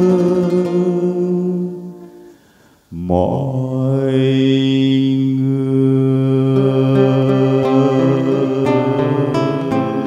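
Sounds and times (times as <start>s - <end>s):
man singing long note: 0.0s - 2.2s, 2.9s - 10.0s
classical guitar: 0.0s - 2.4s, 6.0s - 10.0s.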